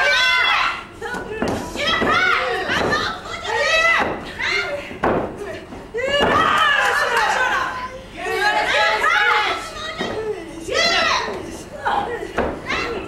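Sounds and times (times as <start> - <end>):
women shouting: 0.0 - 13.0.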